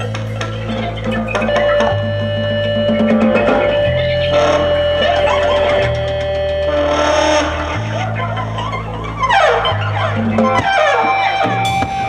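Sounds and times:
jazz-rock band playing: 0.0 - 7.8, 10.0 - 12.0
electric guitar: 0.0 - 12.0
held bass notes: 0.0 - 12.0.

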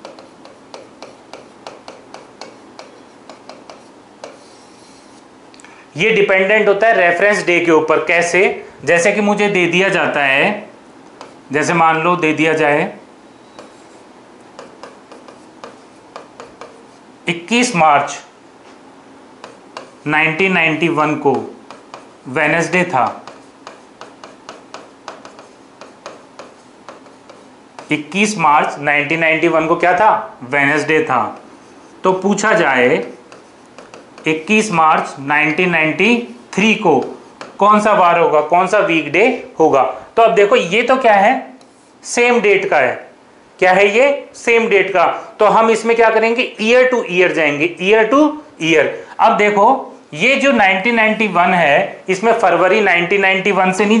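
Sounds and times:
pen tapping on screen: 0.0 - 4.6, 11.0 - 11.4, 13.5 - 16.9, 19.4 - 20.0, 21.3 - 22.2, 22.9 - 28.1, 32.5 - 35.1, 37.0 - 37.6
man speaking: 5.9 - 10.7, 11.5 - 13.0, 17.3 - 18.4, 20.0 - 21.6, 22.2 - 23.4, 27.9 - 33.2, 34.2 - 54.0.

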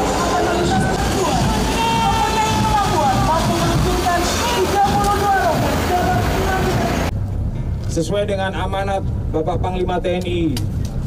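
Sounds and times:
truck engines rumbling: 0.0 - 11.0.

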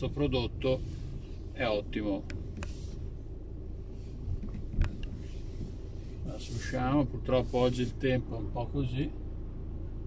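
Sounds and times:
car cabin engine rumble: 0.0 - 10.0.

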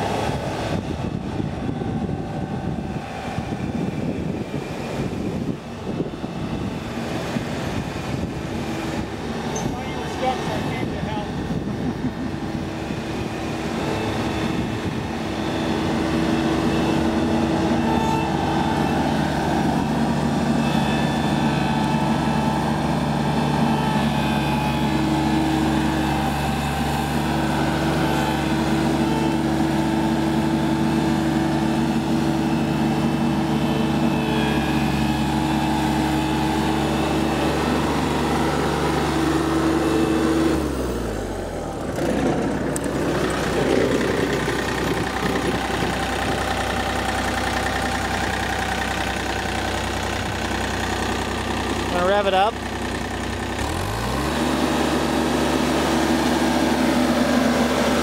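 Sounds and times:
diesel mower engine running: 0.0 - 58.0.

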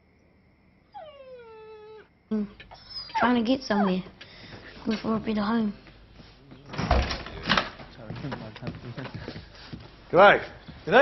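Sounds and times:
dog whining: 0.9 - 4.2.

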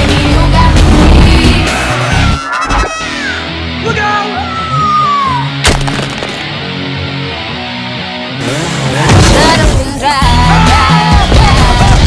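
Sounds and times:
sharp crash: 5.6 - 6.6.

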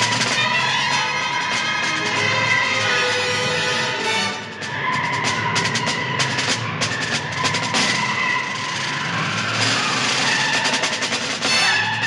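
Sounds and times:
orchestral action music: 0.0 - 12.0
rapid snare drum pattern: 0.0 - 12.0.

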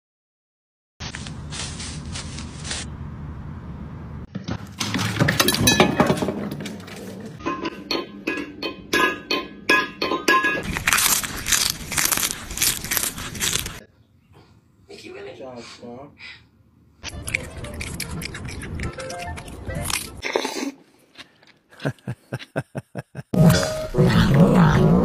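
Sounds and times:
metal bowl clanging on floor: 5.3 - 6.6, 7.4 - 10.6.

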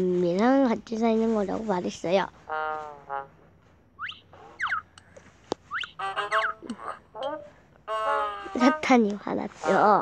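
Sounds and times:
cartoon whistle slides: 5.7 - 8.8.

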